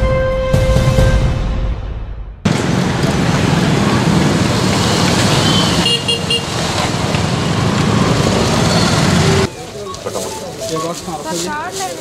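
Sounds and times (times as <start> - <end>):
motorcycle and scooter traffic: 2.4 - 12.0.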